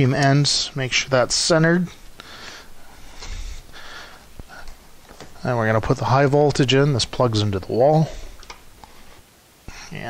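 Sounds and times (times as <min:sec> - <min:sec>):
man breathing into microphone: 0:02.1 - 0:04.8, 0:08.1 - 0:10.0.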